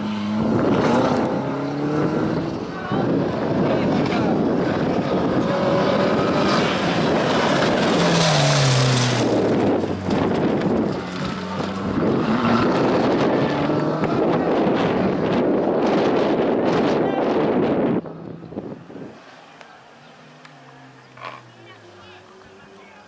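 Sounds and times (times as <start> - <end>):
wind buffeting microphone: 0.0 - 19.2
race car engine revving: 0.0 - 19.4.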